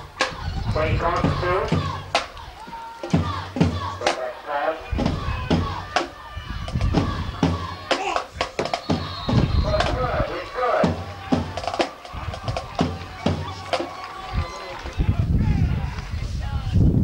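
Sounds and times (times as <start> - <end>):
irregular drum beats: 0.0 - 4.3, 4.9 - 14.7
shouting voices: 0.0 - 16.9
band music: 6.9 - 14.9.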